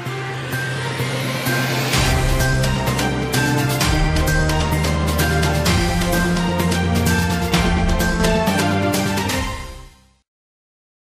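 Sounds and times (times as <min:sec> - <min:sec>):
electronic news intro music: 0:00.0 - 0:10.1.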